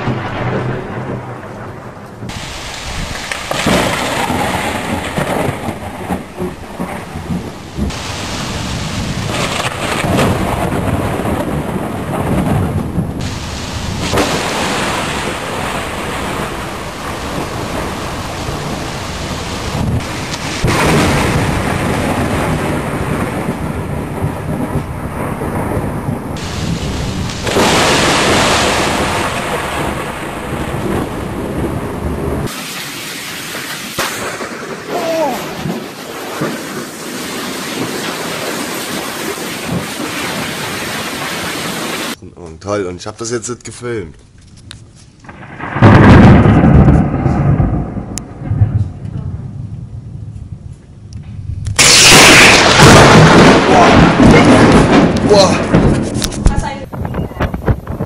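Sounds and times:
steady rain: 0.0s - 42.2s, 44.7s - 50.8s, 51.6s - 58.0s
thunder rumbling and cracking: 0.0s - 42.2s, 45.2s - 58.0s.

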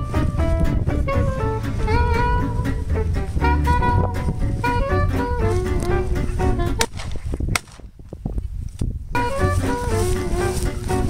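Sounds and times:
background music: 0.0s - 7.0s, 9.2s - 11.0s
low wind noise: 0.0s - 11.0s
shotgun shots: 6.8s - 7.9s.

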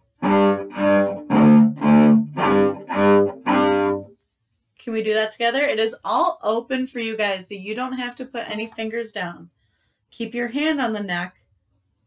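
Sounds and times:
cello bowed notes: 0.0s - 4.1s.

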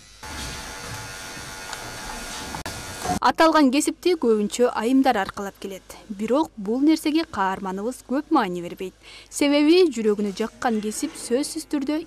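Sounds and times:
electric hair clippers buzzing: 0.0s - 3.2s.

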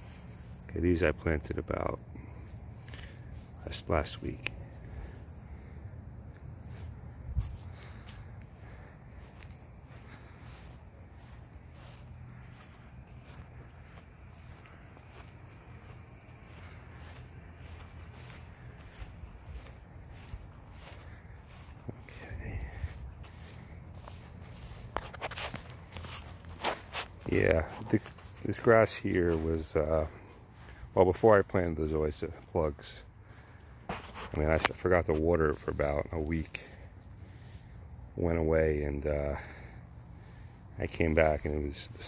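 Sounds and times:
footsteps on grass: 0.0s - 42.0s
insects trilling: 0.0s - 42.0s.

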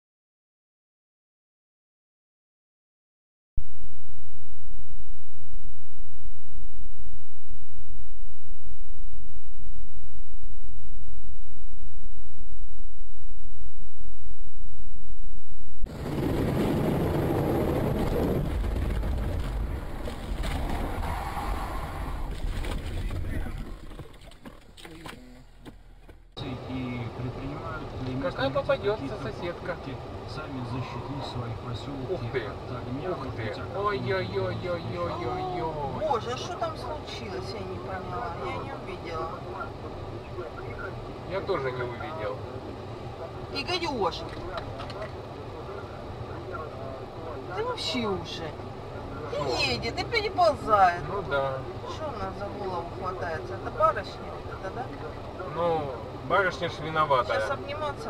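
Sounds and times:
car engine rumble: 15.7s - 58.0s
tyre and wind noise: 15.8s - 26.2s
woman speaking: 35.2s - 39.4s, 47.5s - 48.6s, 49.3s - 51.0s, 57.4s - 58.0s.

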